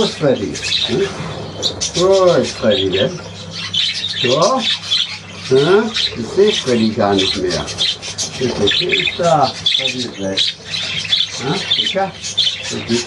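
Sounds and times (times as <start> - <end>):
budgerigars chattering and squawking: 0.0 - 13.0.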